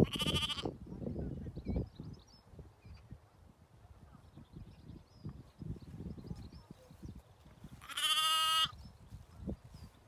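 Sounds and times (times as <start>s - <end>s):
lamb bleating: 0.0s - 0.7s, 7.8s - 8.7s.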